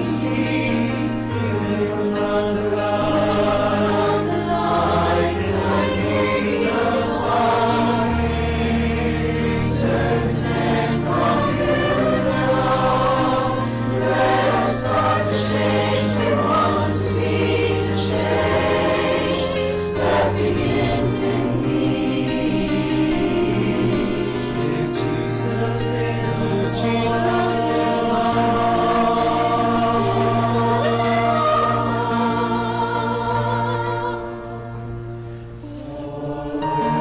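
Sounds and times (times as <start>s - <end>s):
choir singing sustained chords: 0.0s - 37.0s.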